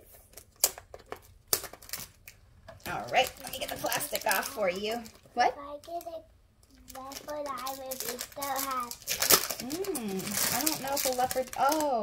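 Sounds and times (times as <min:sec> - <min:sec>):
plastic wrapping crinkling: 0:00.1 - 0:12.0.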